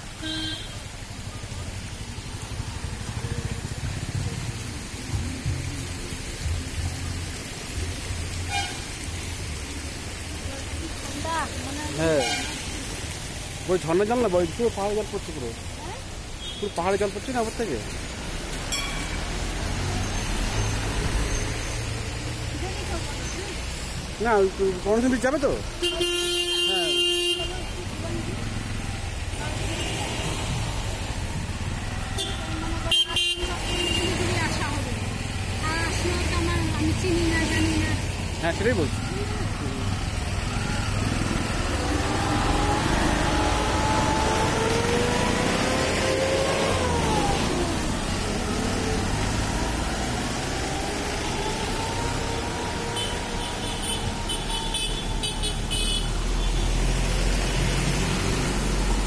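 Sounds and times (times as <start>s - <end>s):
vehicle engines running: 0.0s - 25.8s, 27.5s - 59.0s
car horn toot: 0.2s - 0.8s, 8.5s - 8.8s, 25.8s - 27.7s, 32.2s - 34.2s, 53.0s - 56.7s.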